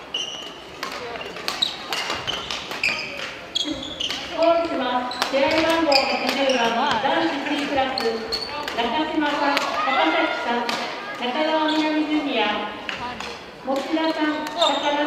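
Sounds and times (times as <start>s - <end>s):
shoes squeaking on wooden floor: 0.0s - 8.7s, 11.6s - 12.1s, 14.5s - 15.0s
voices of players and onlookers: 0.1s - 15.0s
rackets striking shuttlecock: 0.8s - 3.4s, 4.0s - 8.9s.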